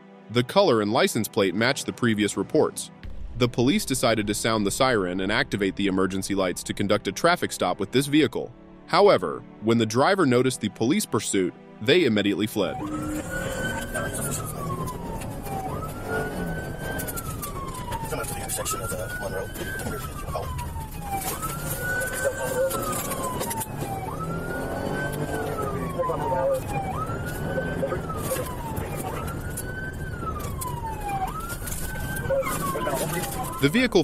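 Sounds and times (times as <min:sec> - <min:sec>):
police siren wailing: 0:12.5 - 0:34.0
road noise: 0:12.6 - 0:34.0
car engine: 0:12.7 - 0:33.6.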